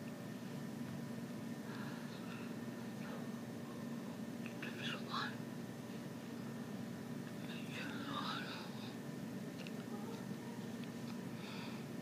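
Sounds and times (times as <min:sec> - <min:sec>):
steady low hum: 0:00.0 - 0:12.0
woman whispering: 0:04.6 - 0:05.4, 0:07.4 - 0:09.0.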